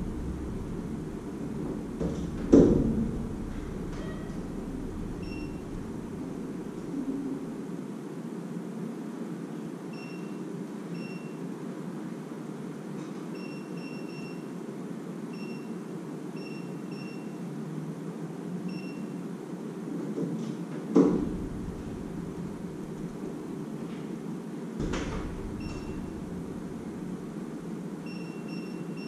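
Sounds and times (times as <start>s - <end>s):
low hum: 0.0s - 7.8s, 21.0s - 24.0s, 24.8s - 29.0s.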